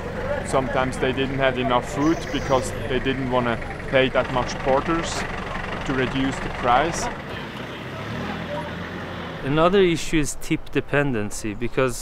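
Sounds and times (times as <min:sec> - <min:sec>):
minibus engine humming: 0:00.0 - 0:12.0.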